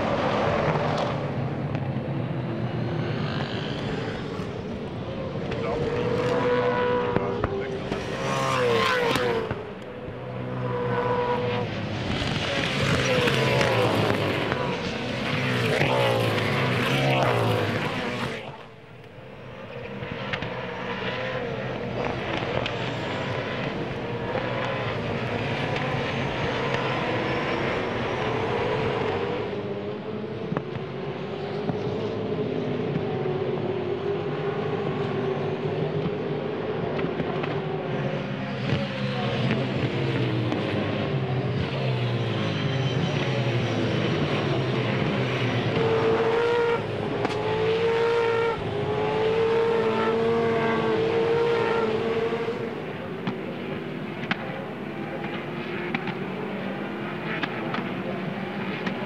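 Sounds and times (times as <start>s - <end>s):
racing car engines passing: 0.0s - 59.0s.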